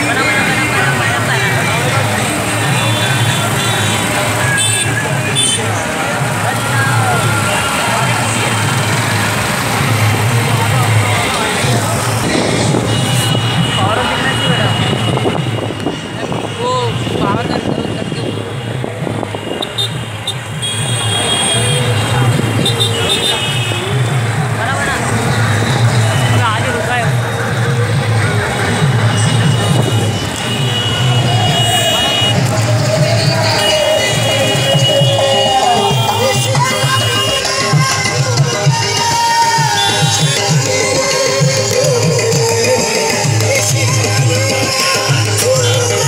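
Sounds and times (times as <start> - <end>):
motorcycle and scooter engines: 0.0 - 46.0
people calling out: 28.4 - 46.0.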